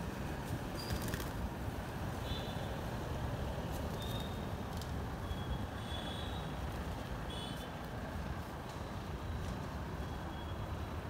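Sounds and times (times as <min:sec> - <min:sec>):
low rumble of street traffic: 0:00.0 - 0:11.0.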